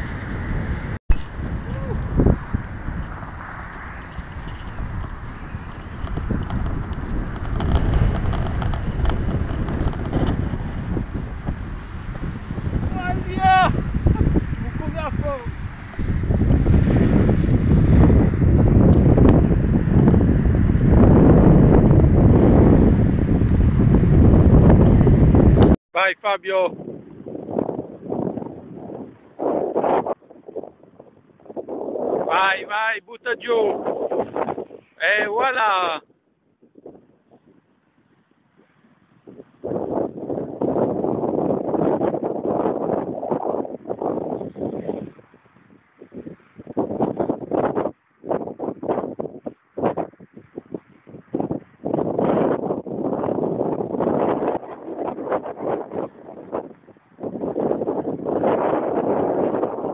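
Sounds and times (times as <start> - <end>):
wind buffeting microphone: 0.0 - 59.9.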